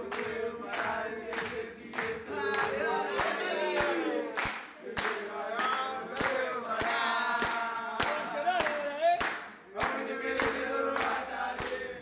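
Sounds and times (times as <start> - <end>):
group of voices chanting: 0.0 - 12.0
rhythmic clapping: 0.0 - 12.0.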